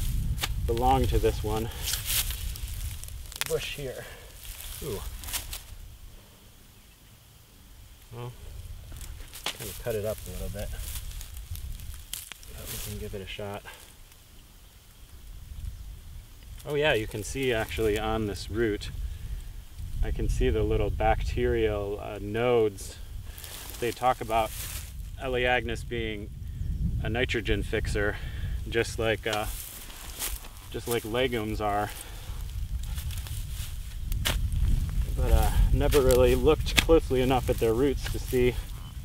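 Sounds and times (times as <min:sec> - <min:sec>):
leaves crunching and rustling: 0:00.0 - 0:06.0, 0:08.6 - 0:14.2, 0:16.4 - 0:19.0, 0:23.1 - 0:25.3, 0:28.8 - 0:39.0
low uneven rumble: 0:00.0 - 0:39.0
shovel digging into soil: 0:33.6 - 0:34.6, 0:35.9 - 0:38.3.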